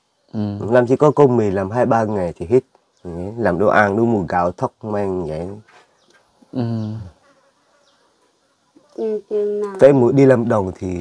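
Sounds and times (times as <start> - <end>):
insect buzzing: 5.8 - 10.4.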